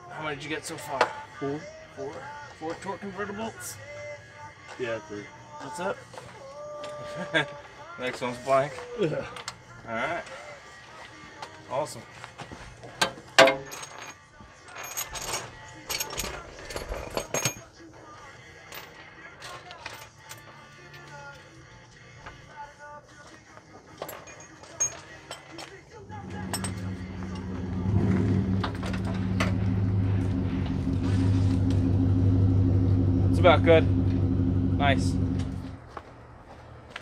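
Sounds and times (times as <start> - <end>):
metal wrench clinking on engine: 13.4 - 17.7, 24.0 - 25.6, 26.3 - 27.6
vehicle engine running: 26.1 - 35.9.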